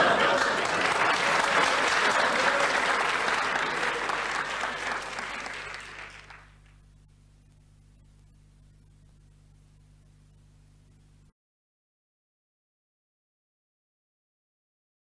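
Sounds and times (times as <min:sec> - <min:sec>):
audience applause: 0:00.0 - 0:06.8
faint low hum and hiss: 0:01.3 - 0:11.3.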